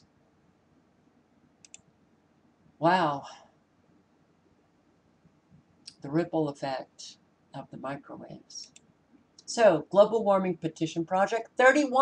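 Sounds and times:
computer mouse clicks: 1.6 - 1.9.

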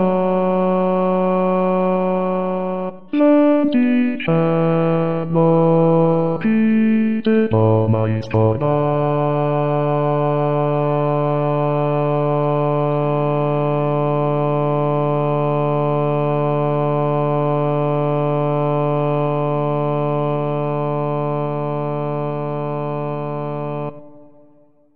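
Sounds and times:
computer choral arrangement playback: 2.5 - 14.0.

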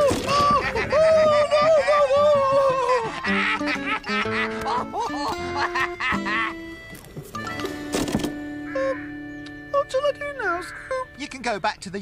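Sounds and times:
squawky cackling character laugh: 0.3 - 6.6.

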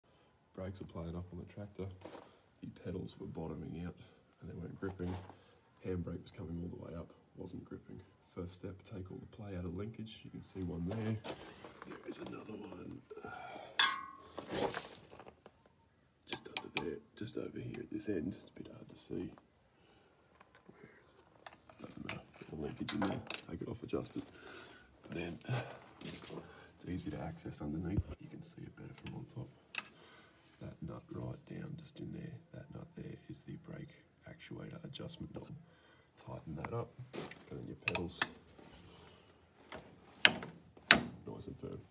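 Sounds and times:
metallic clink: 13.8 - 14.4.

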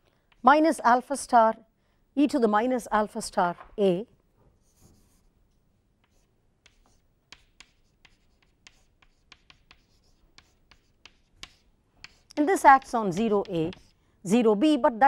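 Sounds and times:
chalk tapping and scratching: 4.6 - 5.3, 6.0 - 14.0.

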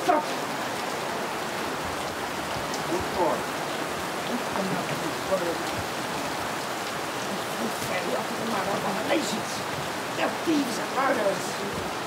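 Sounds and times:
person's voice: 0.0 - 0.5, 2.8 - 3.4, 4.3 - 5.7, 7.3 - 11.9
heavy rain pouring: 0.0 - 12.0.

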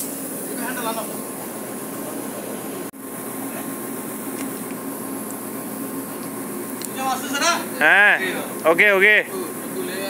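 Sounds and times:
ship machinery hum: 0.0 - 10.0.

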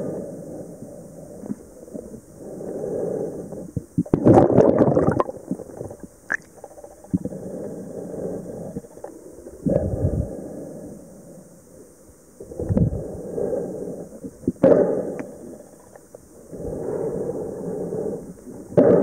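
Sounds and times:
underwater sloshing and bubbling: 0.0 - 19.0.

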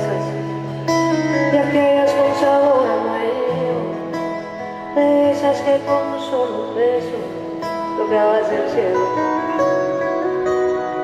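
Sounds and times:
woman singing: 0.0 - 10.0
acoustic guitars playing chords: 0.0 - 11.0.

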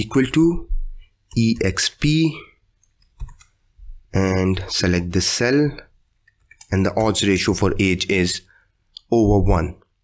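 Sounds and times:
person speaking: 0.0 - 10.0
computer keyboard clicks: 3.0 - 3.6.

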